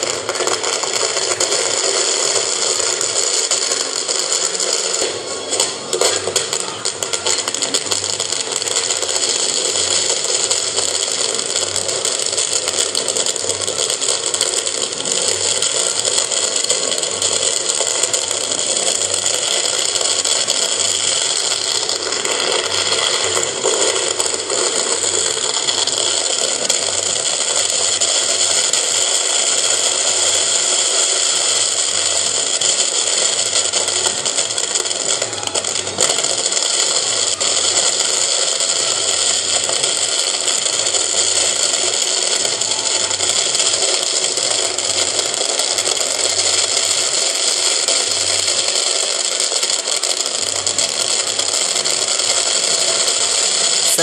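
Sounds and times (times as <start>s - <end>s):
fireworks rushing noise: 0.0s - 54.0s.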